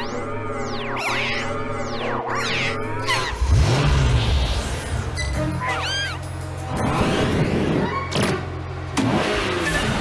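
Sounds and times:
background music: 0.0 - 10.0
cartoon car sound effects: 0.7 - 8.5.

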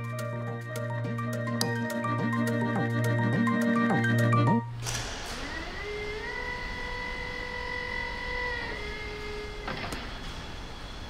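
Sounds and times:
mechanical whine: 2.2 - 11.0.

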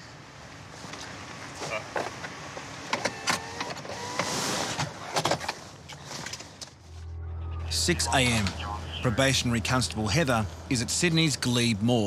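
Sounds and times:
low engine hum: 6.7 - 12.0.

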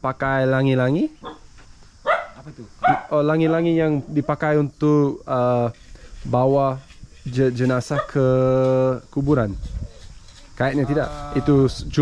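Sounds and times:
dog barking: 2.0 - 3.7, 7.9 - 8.2.

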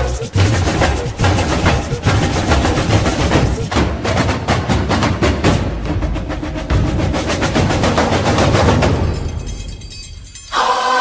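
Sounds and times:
fast drum beat: 0.0 - 9.3.

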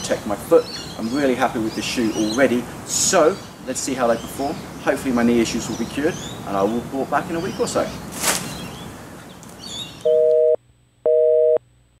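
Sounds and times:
telephone busy signal beeps: 10.1 - 11.6.

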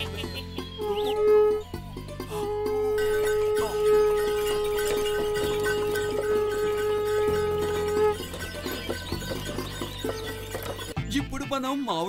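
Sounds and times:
background music with percussion: 0.0 - 11.6
conch shell blown: 0.8 - 8.4.

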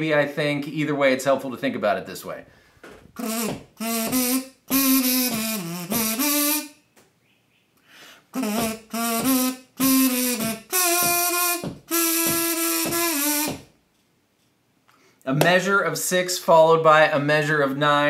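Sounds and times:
kazoo-like buzzy humming: 3.1 - 6.8, 8.1 - 13.8.

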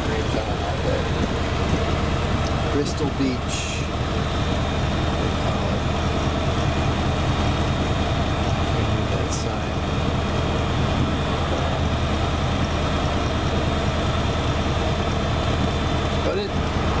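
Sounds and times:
truck engine idling: 0.0 - 17.0.

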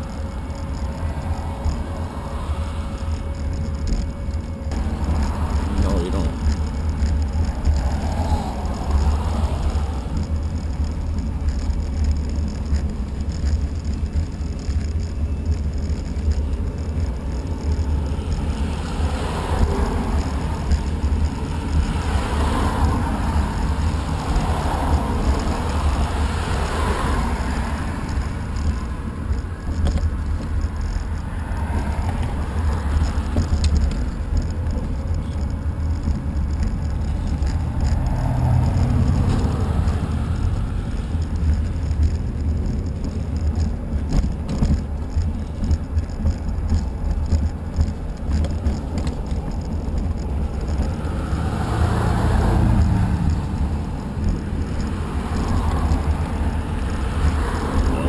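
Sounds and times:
cars passing: 0.0 - 58.0
wind rumble on microphone: 0.0 - 58.0.

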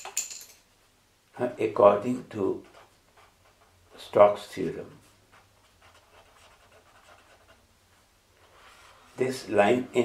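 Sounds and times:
marker scratching on paper: 2.5 - 4.0, 5.3 - 7.6.

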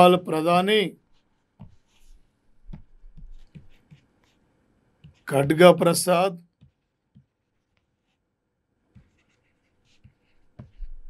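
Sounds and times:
pen scratching on paper: 1.0 - 5.3, 6.6 - 8.2, 8.9 - 11.0.

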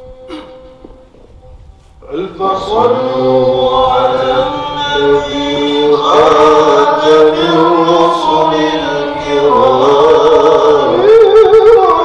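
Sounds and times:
men chanting together: 2.0 - 11.3.

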